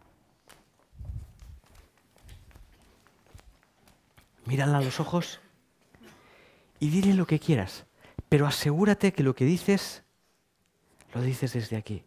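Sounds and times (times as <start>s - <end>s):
footsteps on wooden stage floor: 0.0s - 4.5s.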